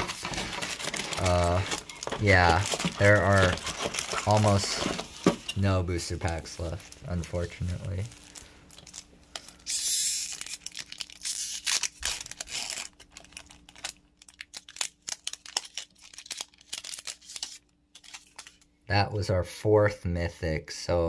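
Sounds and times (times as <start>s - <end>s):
foil crinkling: 0.0s - 18.7s
foil wrapper ripping: 0.0s - 18.7s.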